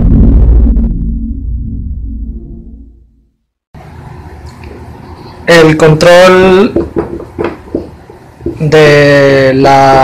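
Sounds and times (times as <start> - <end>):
low synthesizer drone: 0.0 - 5.4.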